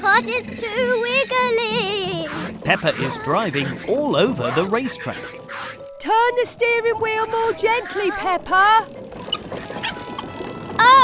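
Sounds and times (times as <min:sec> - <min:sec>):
soft background music: 0:00.0 - 0:11.0
child crying out: 0:10.8 - 0:11.0.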